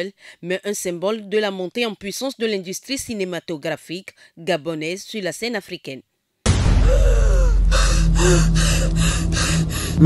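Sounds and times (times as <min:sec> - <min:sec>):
steady low hum: 0:06.8 - 0:10.0
woman gasping for breath: 0:06.8 - 0:10.0.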